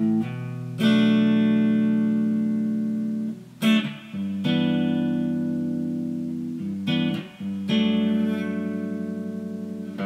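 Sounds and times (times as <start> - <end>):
electric guitar chord ringing: 0.0 - 10.0.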